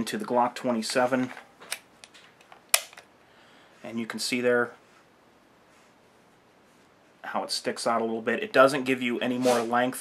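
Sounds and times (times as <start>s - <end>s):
magazine seating click: 1.6s - 3.1s.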